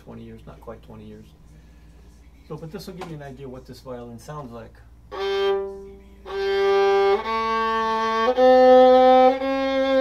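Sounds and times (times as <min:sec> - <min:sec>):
violin note bowed: 0:05.1 - 0:10.0.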